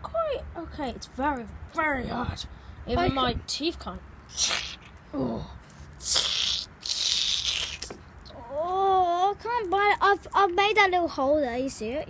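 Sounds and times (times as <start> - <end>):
dried potpourri crackling and rustling: 6.8 - 11.8.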